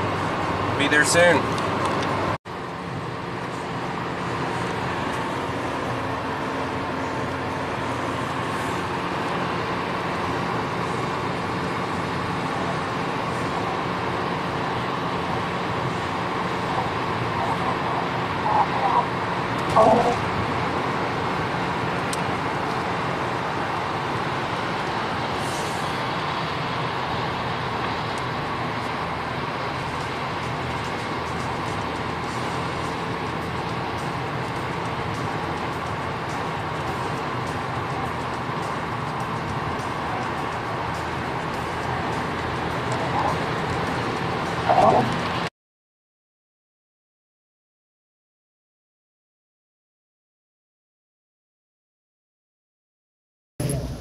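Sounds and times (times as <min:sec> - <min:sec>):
car cabin road noise: 0:00.0 - 0:45.5, 0:53.6 - 0:54.0.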